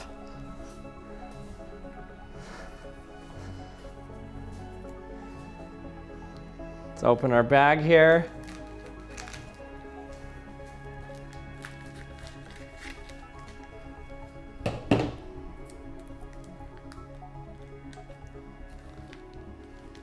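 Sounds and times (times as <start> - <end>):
background music with held notes: 0.0 - 20.0
plastic bag crinkling: 8.1 - 10.2, 15.6 - 20.0.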